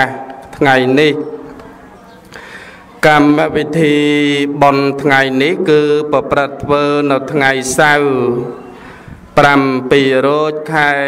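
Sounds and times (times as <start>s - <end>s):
man chanting melodically: 0.0s - 1.5s, 3.0s - 11.0s.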